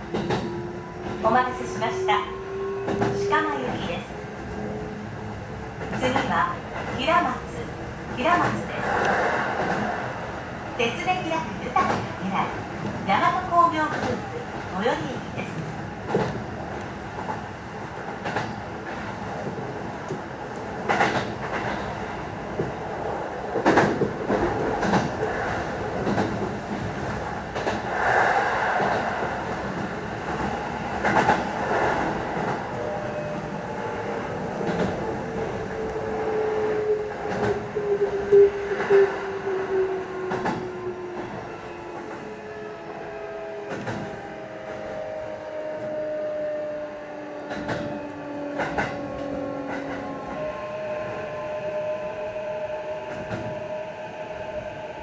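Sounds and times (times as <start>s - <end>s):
train wheels clicking over rail joints: 18.1s - 21.9s, 23.5s - 32.6s, 47.4s - 50.1s.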